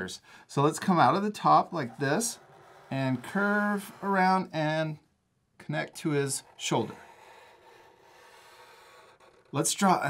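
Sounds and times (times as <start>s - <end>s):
markers rubbing on paper: 1.4s - 4.4s, 6.0s - 9.9s.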